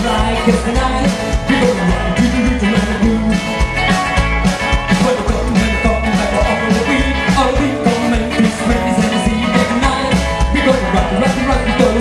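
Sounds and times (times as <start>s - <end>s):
acoustic guitar: 0.0s - 12.0s
drums: 0.0s - 12.0s
electric guitar: 0.0s - 12.0s
upright bass: 0.0s - 12.0s.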